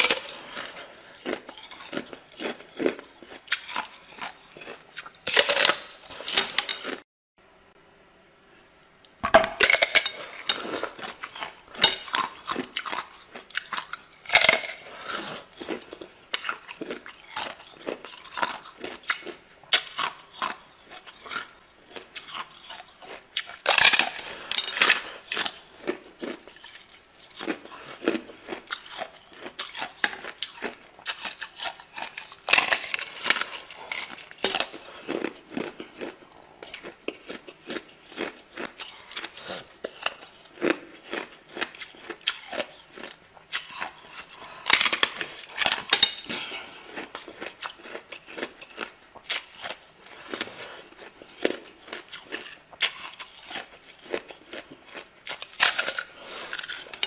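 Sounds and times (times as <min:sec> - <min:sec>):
ice being chewed: 0:00.0 - 0:07.0, 0:09.6 - 0:57.0.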